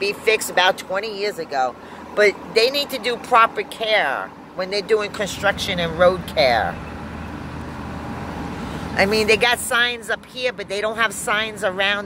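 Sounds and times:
road and engine noise inside vehicle: 0:00.0 - 0:12.0.

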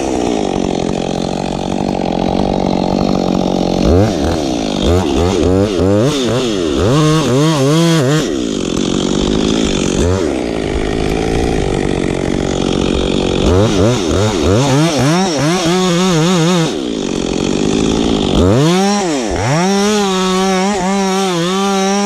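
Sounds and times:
chainsaw revving: 0:00.0 - 0:22.0.

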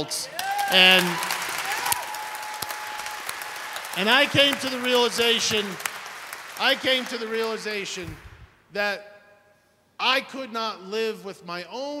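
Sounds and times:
audience applauding: 0:00.0 - 0:08.4.

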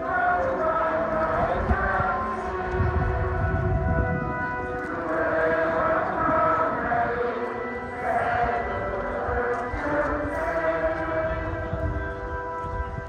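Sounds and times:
slow hymn music: 0:00.0 - 0:13.0.

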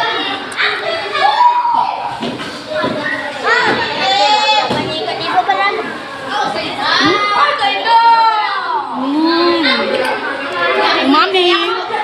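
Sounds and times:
high-pitched voices chattering: 0:00.0 - 0:12.0.

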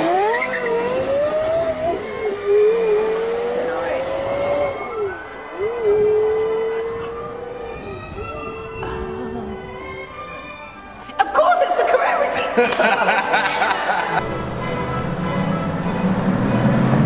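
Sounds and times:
car engine accelerating: 0:00.0 - 0:11.2, 0:12.2 - 0:17.0.

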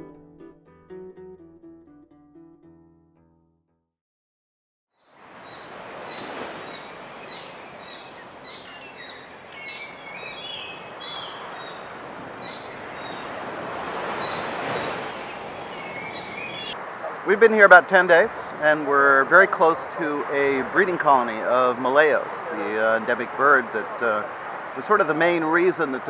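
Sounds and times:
small birds chirping: 0:05.1 - 0:16.8
surf washing onto rocks: 0:05.2 - 0:16.8.

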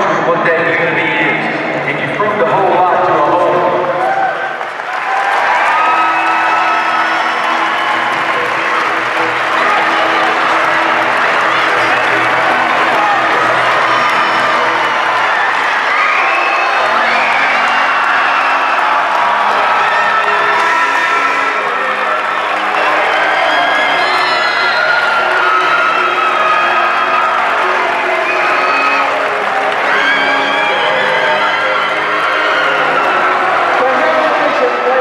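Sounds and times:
loud music playing: 0:00.0 - 0:35.0
crowd cheering and applauding: 0:02.2 - 0:35.0.

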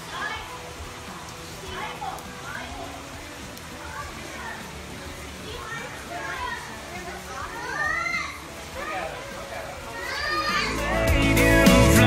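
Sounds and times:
music: 0:00.0 - 0:12.0
children calling out: 0:03.8 - 0:11.1.

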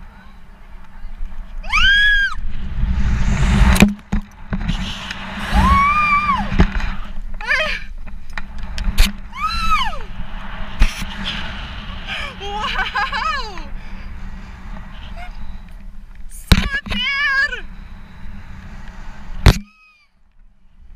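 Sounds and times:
wind rushing over microphone: 0:00.0 - 0:19.6
woman screaming: 0:01.6 - 0:02.4, 0:05.5 - 0:06.5, 0:09.3 - 0:10.1.

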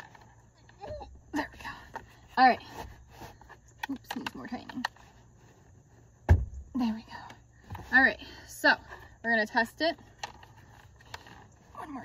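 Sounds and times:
plastic handling noise: 0:00.0 - 0:08.2, 0:09.8 - 0:12.0
woman speaking: 0:01.3 - 0:02.8, 0:03.8 - 0:04.9, 0:06.8 - 0:10.0, 0:11.7 - 0:12.0.

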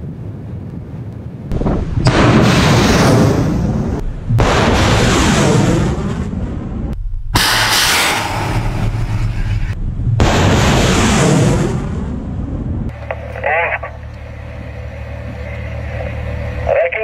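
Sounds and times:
rocket booster roar: 0:01.5 - 0:12.9.

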